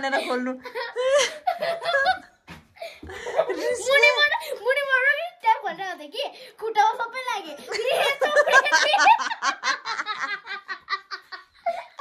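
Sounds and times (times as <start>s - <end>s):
people laughing: 0.2s - 2.4s, 7.7s - 12.0s.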